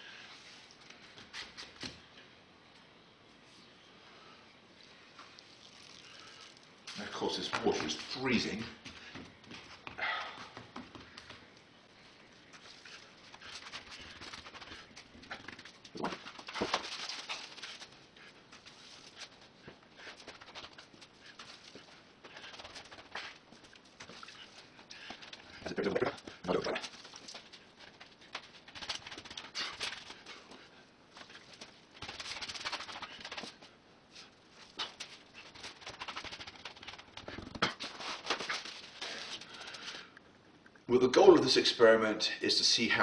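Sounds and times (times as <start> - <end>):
wet cloth rubbing and splashing: 5.4 - 7.0.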